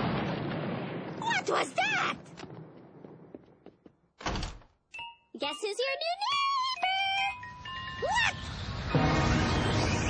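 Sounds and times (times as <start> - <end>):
cartoon door thud: 4.2 - 4.7.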